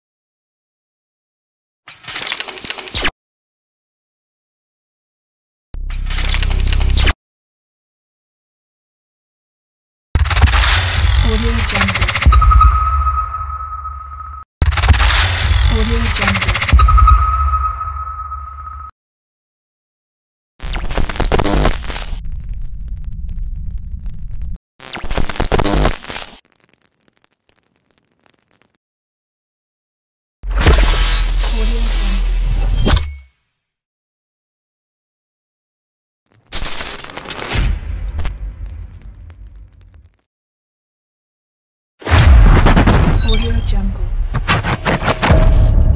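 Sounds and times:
crackly digital glitch noise: 5.8 - 7.2, 10.2 - 12.9, 14.6 - 16.8, 20.6 - 28.8, 36.3 - 40.3, 42.3 - 45.9
low hit: 42.1 - 43.3, 43.9 - 45.9.

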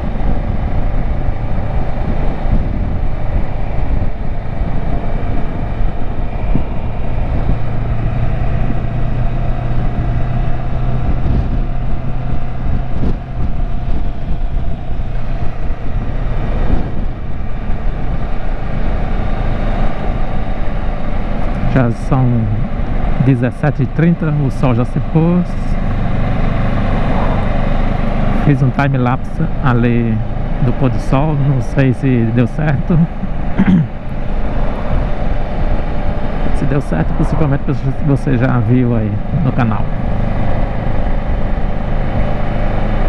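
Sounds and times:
wind buffeting microphone: 0.0 - 23.3, 25.1 - 43.0
motorcycle engine running: 0.0 - 43.0.

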